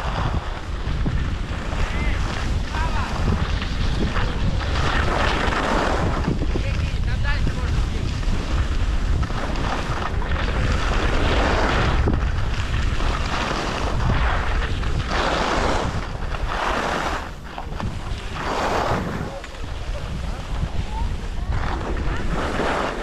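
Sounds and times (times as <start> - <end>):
skis scraping on snow: 0.0 - 23.0
wind buffeting microphone: 0.0 - 23.0.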